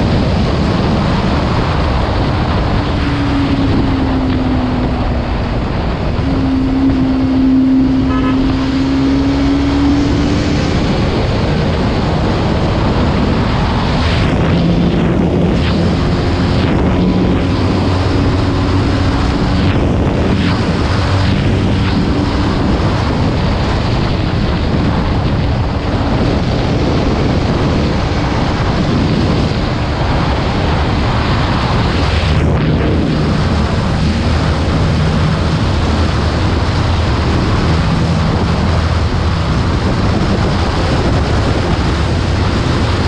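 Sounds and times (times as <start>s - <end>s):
motorcycle engine droning: 0.0s - 43.0s
wind blast on microphone: 0.0s - 43.0s.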